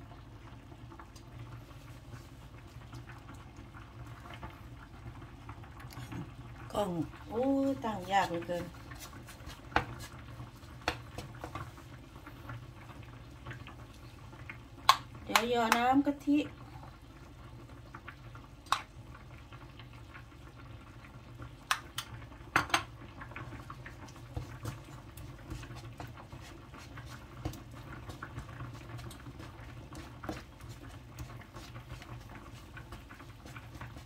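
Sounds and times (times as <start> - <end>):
paste frying crackles: 0.0 - 34.0
wooden spatula scraping a wok: 7.4 - 11.8, 24.2 - 34.0.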